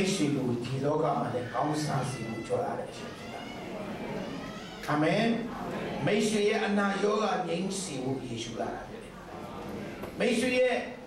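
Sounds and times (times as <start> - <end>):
man speaking through microphone: 0.0 - 3.3, 4.8 - 9.1, 10.2 - 11.0.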